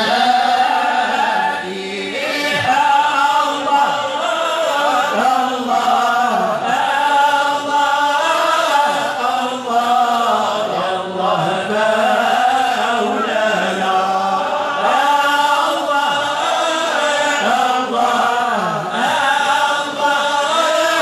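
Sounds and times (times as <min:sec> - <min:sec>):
men chanting together: 0:00.0 - 0:21.0.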